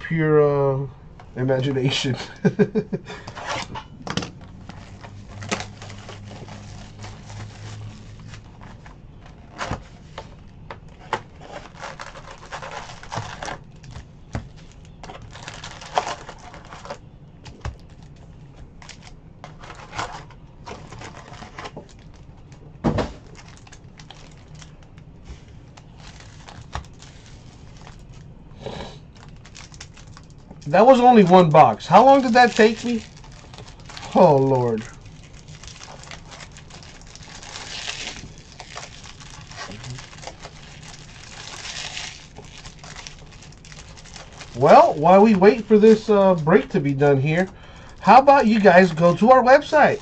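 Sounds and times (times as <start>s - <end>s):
cards and foil packs handled: 1.6s - 28.3s, 29.1s - 50.0s.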